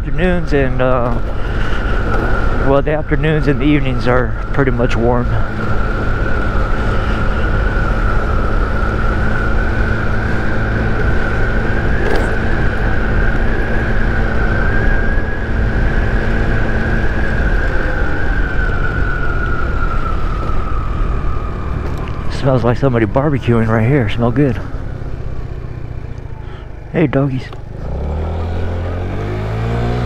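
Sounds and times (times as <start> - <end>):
scooter engine whine: 0.0 - 30.0
wind and road noise: 0.0 - 30.0.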